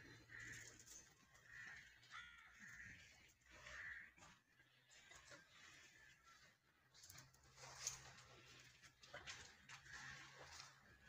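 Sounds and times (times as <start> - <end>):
faint harsh bird calls: 0.0 - 6.8.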